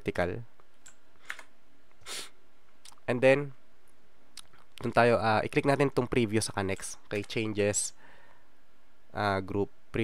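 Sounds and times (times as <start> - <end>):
low room noise: 0.0 - 10.0
computer mouse clicks: 0.6 - 1.5, 6.7 - 7.5
short hiss: 2.0 - 2.4.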